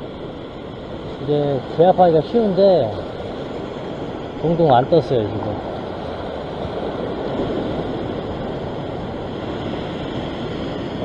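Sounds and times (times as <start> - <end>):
surf washing over rocks: 0.0 - 11.0.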